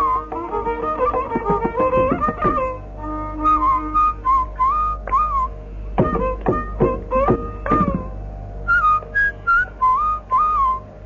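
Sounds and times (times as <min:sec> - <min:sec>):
breathy bamboo flute: 0:00.0 - 0:11.0.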